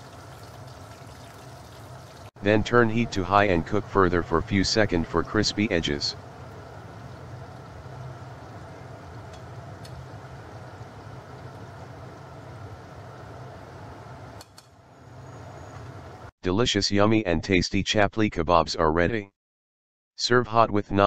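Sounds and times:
patties sizzling in hot oil: 0:00.0 - 0:02.4.

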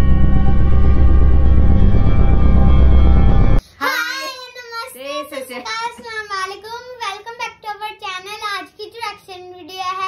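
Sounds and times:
bass-heavy intro music: 0:00.0 - 0:03.6.

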